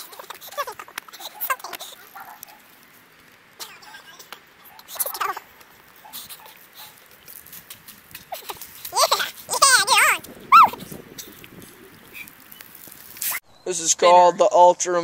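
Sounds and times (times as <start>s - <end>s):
faint clicks: 0.0s - 9.5s
dog howling and whining: 10.5s - 10.8s.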